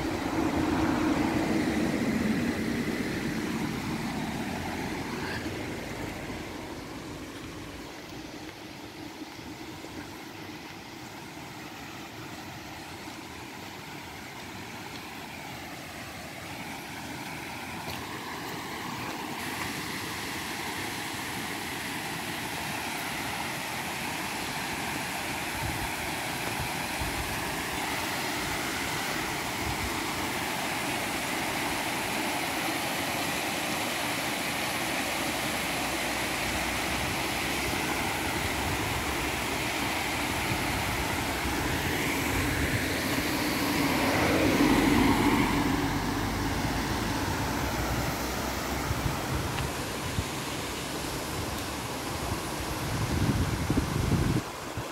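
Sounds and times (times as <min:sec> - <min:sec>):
vehicle passing by: 0:00.0 - 0:06.6, 0:41.8 - 0:49.5
steady rushing noise: 0:00.0 - 0:54.9.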